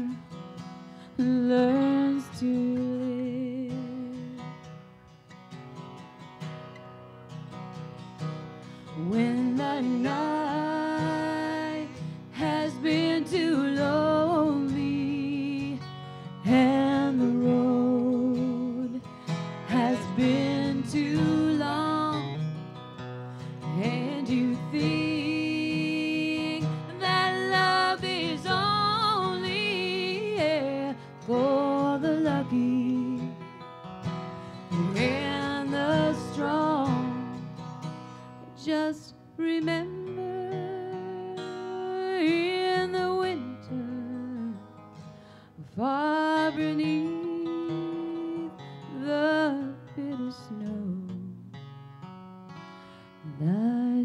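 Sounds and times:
woman singing a slow ballad: 0.0 - 4.6, 8.7 - 33.6, 34.4 - 51.6, 53.2 - 54.0
strummed acoustic guitar: 0.0 - 54.0.

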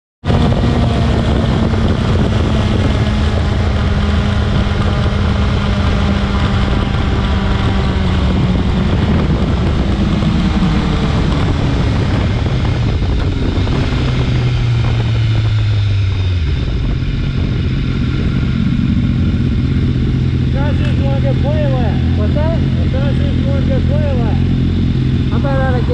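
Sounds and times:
motorcycle engine running: 0.2 - 25.9
wind rush: 0.2 - 25.9.

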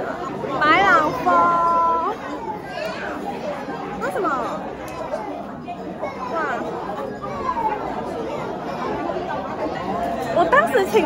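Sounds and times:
people talking at once: 0.0 - 11.0.

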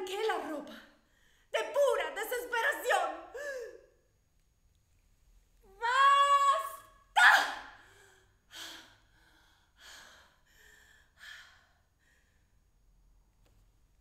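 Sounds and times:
woman's high vocal cry: 5.8 - 7.7
woman's breathy gasps: 7.7 - 12.4.

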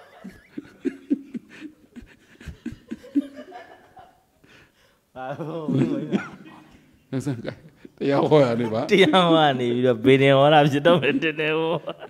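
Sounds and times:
man laughing: 0.0 - 4.2, 5.2 - 9.3, 10.9 - 12.0.

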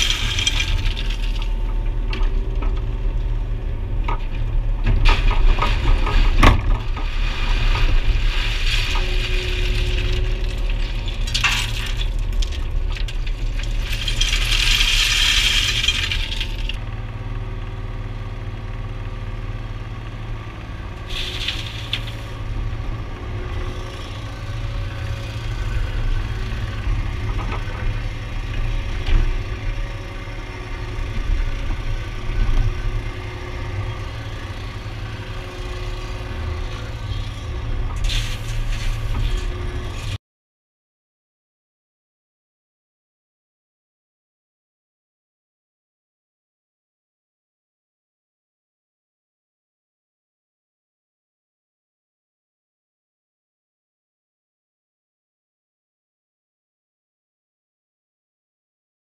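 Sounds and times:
stones clattering in bucket: 0.0 - 1.6, 5.1 - 16.8
excavator engine running: 0.0 - 40.2.

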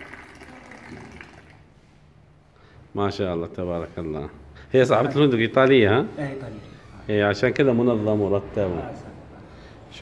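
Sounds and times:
tea pouring into glass: 0.0 - 1.6.

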